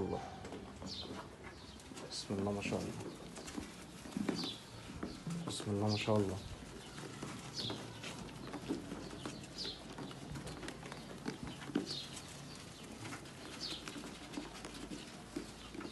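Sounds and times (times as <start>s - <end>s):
bird chirping: 0.0s - 15.9s
sheep eating at metal trough: 0.0s - 15.9s.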